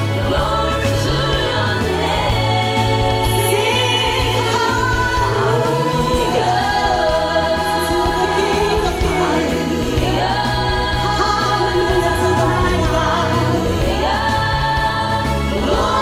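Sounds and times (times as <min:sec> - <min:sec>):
instrumental accompaniment with bass: 0:00.0 - 0:16.0
women singing gospel song: 0:00.0 - 0:16.0.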